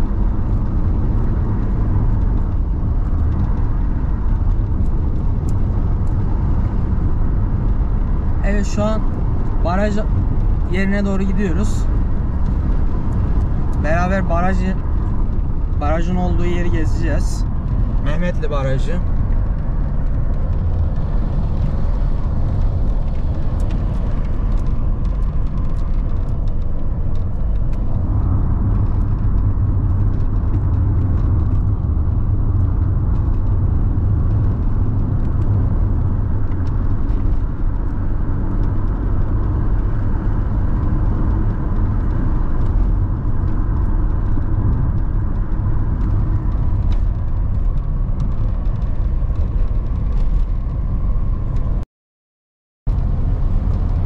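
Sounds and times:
car engine and tyre rumble: 0.0s - 51.8s, 52.9s - 54.0s.

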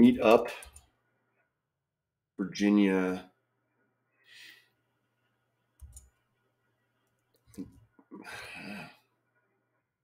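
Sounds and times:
computer clicks: 0.5s - 0.9s, 5.8s - 6.2s.

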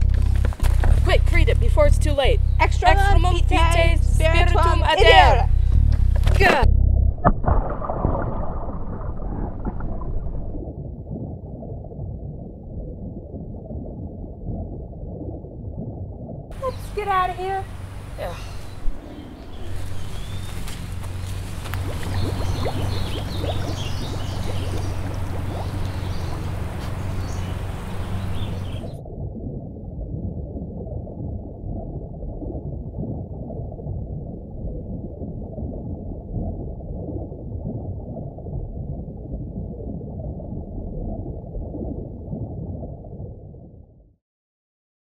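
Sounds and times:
low steady hum: 0.0s - 11.1s, 16.5s - 33.1s
underwater churn of water: 7.2s - 43.7s.

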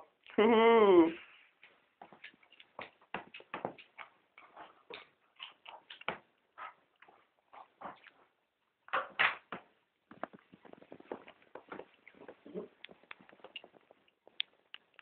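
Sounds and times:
dog and cat scuffling: 1.2s - 8.4s, 10.1s - 14.4s.

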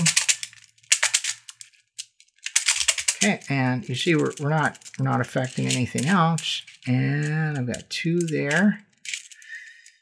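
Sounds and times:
plastic beads clicking and rattling: 0.0s - 10.0s.

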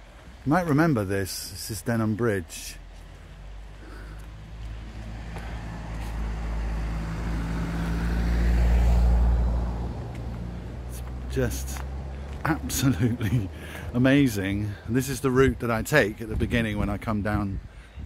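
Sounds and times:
vehicle engine passing: 1.8s - 15.3s.

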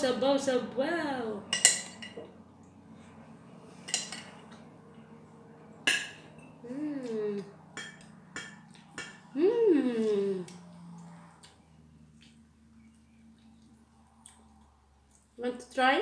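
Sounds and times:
person humming: 6.6s - 7.5s, 9.3s - 11.0s.

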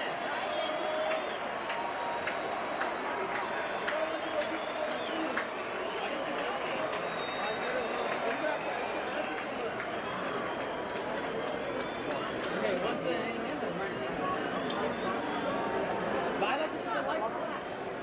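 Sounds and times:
crowd talking: 0.0s - 18.0s.

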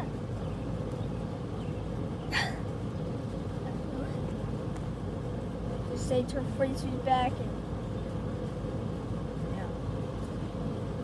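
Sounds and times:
faint hum: 0.0s - 11.0s
low background rumble: 0.0s - 11.0s.

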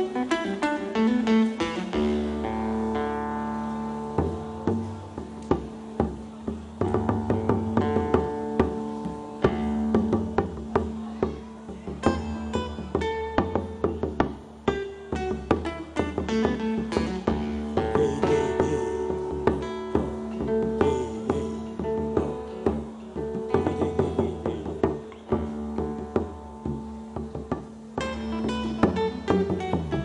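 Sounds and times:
acoustic guitar playing: 0.0s - 30.0s
small hand drum: 0.0s - 30.0s.

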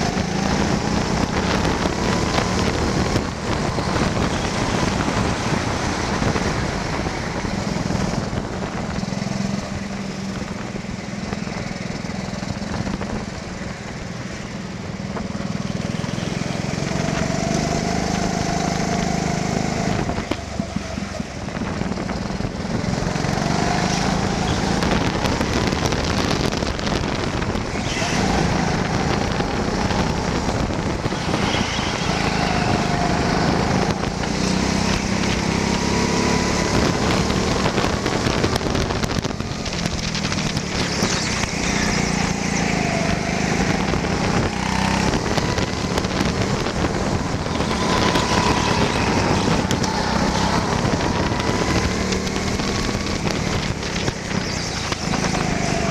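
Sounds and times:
go-kart engine running: 0.0s - 55.9s
wind noise on microphone: 0.0s - 55.9s.

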